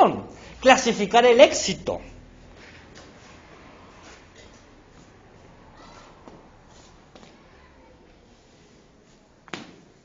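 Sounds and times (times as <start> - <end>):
classroom room noise: 0.0 - 10.0.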